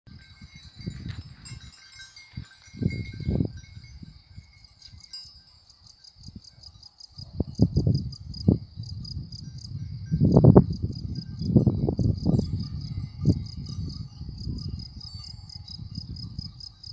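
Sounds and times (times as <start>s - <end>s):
insects chirping: 0.1s - 16.9s.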